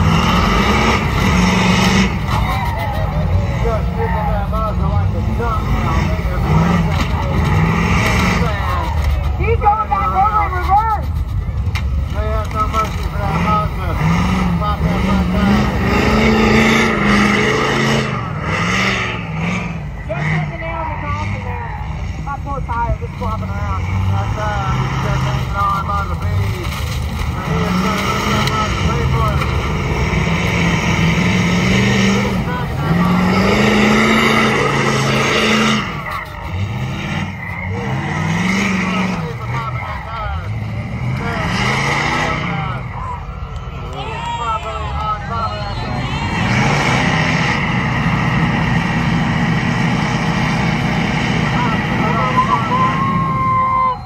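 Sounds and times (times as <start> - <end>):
diesel engine revving: 0.0 - 54.0.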